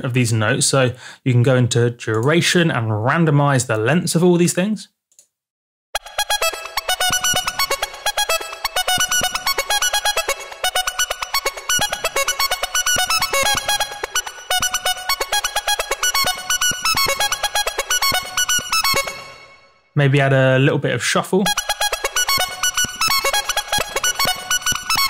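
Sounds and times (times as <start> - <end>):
fast synthesizer riff: 6.0 - 19.7, 21.4 - 25.0.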